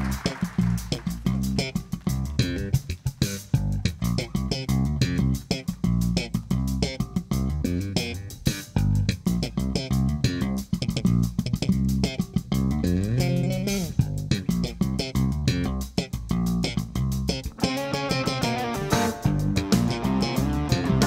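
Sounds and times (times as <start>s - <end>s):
electric bass guitar funk line: 0.0s - 21.0s.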